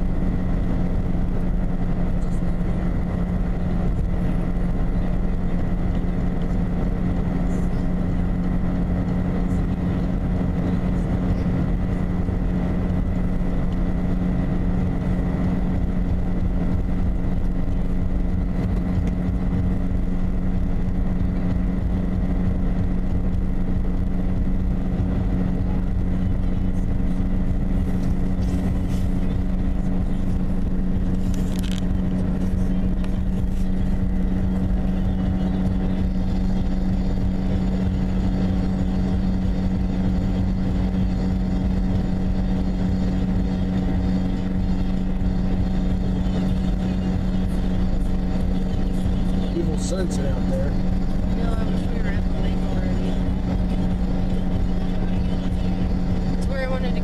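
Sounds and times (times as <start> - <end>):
car engine hum: 0.0 - 57.0
tyres rumbling on road: 0.0 - 57.0.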